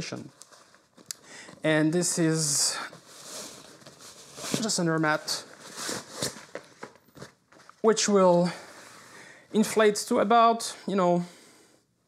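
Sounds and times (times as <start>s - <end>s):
fabric rustling: 0.2s - 9.0s.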